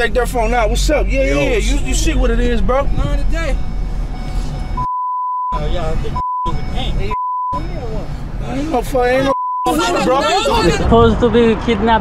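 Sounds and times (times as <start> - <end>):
van cabin rumble: 0.0 - 5.0
censor bleeps: 3.6 - 7.9, 9.3 - 9.9
men shouting: 9.7 - 10.9.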